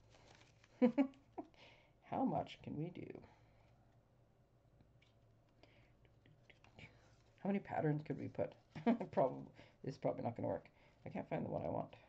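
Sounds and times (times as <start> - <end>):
soft rustles: 0.0 - 1.1, 6.3 - 9.5.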